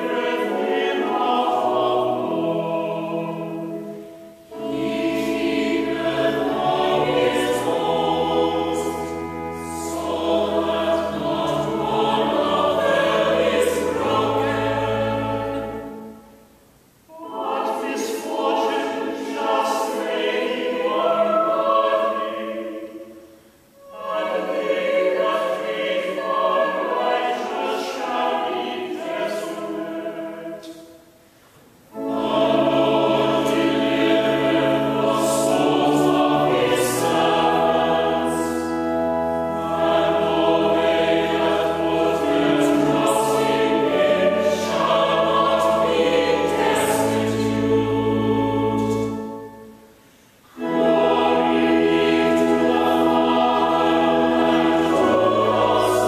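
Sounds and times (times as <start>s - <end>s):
choir singing chant: 0.0s - 16.4s, 17.1s - 31.2s, 31.9s - 56.0s
low organ bass notes: 32.0s - 49.6s.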